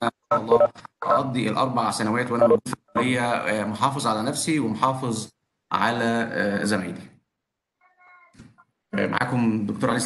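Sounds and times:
cat meow: 7.8 - 8.4.

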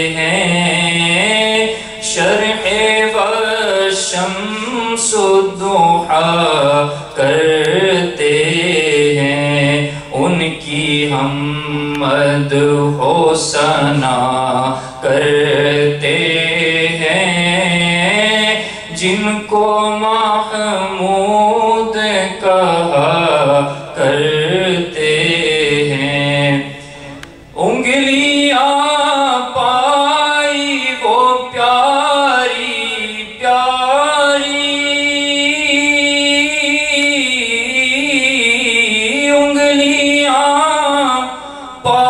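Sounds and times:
man chanting into microphone: 0.0 - 42.0
man breathing: 1.7 - 2.0, 18.6 - 18.9.

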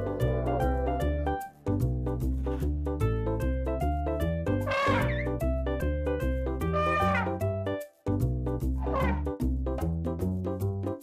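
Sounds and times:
cheerful music with bouncy beat: 0.0 - 11.0.

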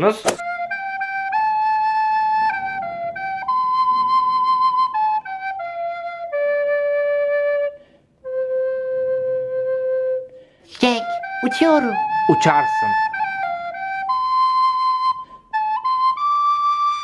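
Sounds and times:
slow solo flute-like melody: 0.4 - 17.0.

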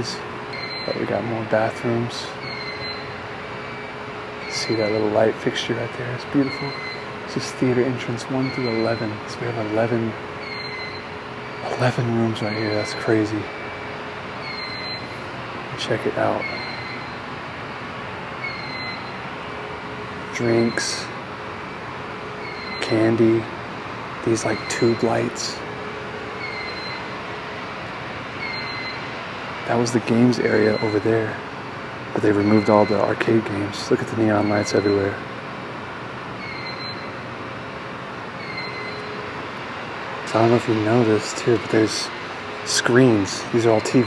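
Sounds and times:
electrical static and hum: 0.0 - 44.0
faint high electronic beep: 5.9 - 7.0.

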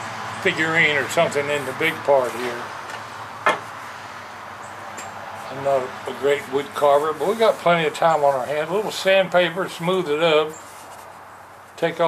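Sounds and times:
steady faint hiss: 5.3 - 12.0.

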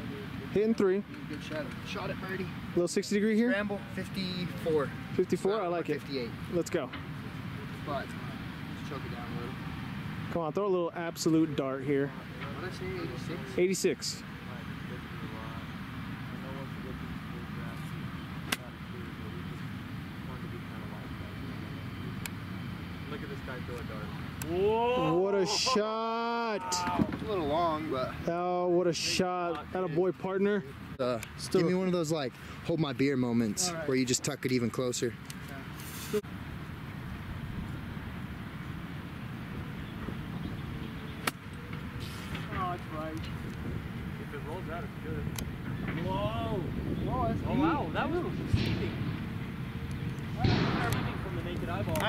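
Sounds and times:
outdoor background hum: 0.0 - 52.0
golf club striking ball: 41.2 - 41.8.

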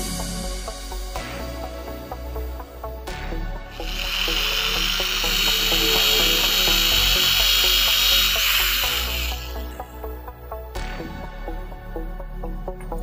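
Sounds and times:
background music: 0.0 - 13.0
electric drill whirring into wood: 3.7 - 9.9.

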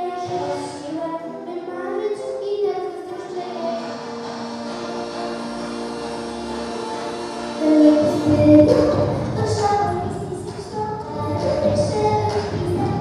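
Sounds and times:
girl singing into microphone: 0.0 - 3.9, 7.6 - 13.0
musical backing track: 0.0 - 13.0.

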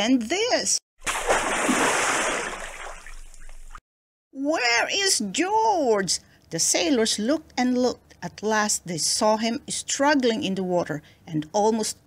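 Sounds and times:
water splashing and sloshing: 1.0 - 3.8.

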